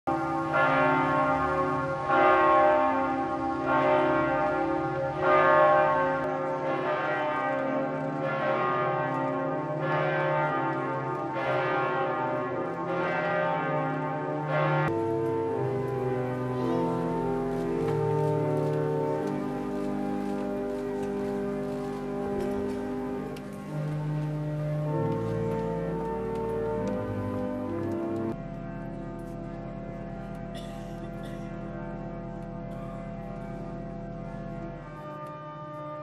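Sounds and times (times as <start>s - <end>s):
church bell tolling: 0.1s - 36.0s.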